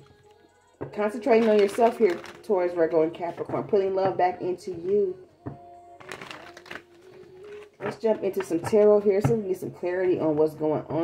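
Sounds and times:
cards rustling in hands: 0:01.2 - 0:02.5, 0:06.0 - 0:08.4.

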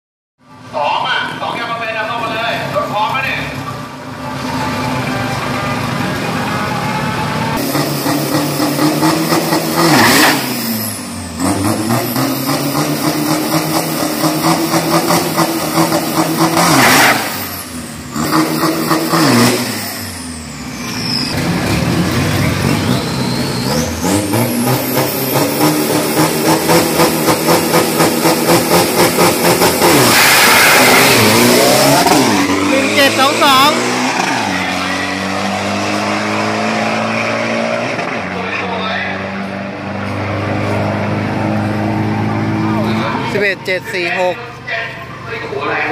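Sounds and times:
engine revving: 0:07.4 - 0:43.7
vehicle launching and accelerating: 0:07.6 - 0:43.3.

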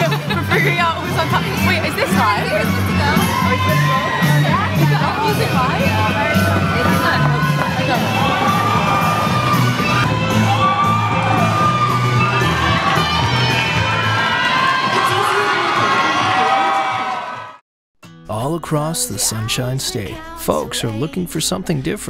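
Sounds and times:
crowd cheering and shouting: 0:00.0 - 0:17.6
loud music: 0:00.0 - 0:17.6.

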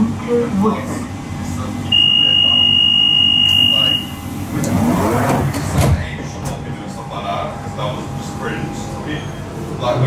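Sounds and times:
door-closing warning beep: 0:01.9 - 0:04.2.

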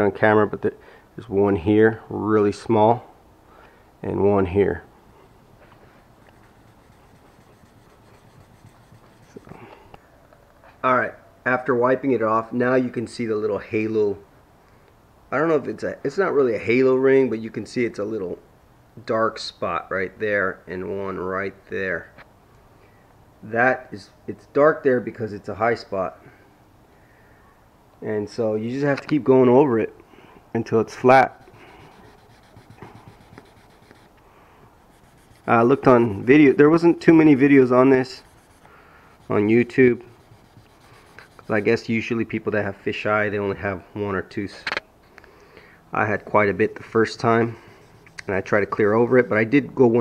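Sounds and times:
sandpaper scratching: 0:06.2 - 0:09.6, 0:31.2 - 0:34.2, 0:34.8 - 0:41.9.

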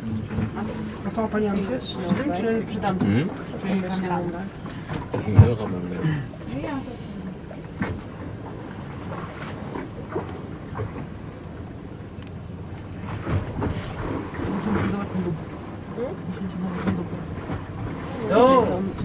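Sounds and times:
boat rumble on choppy sea: 0:00.0 - 0:19.0.

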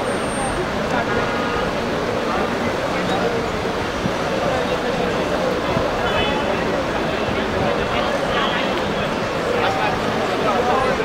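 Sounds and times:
crowd voices: 0:00.0 - 0:11.0
traffic noise: 0:00.0 - 0:11.0.

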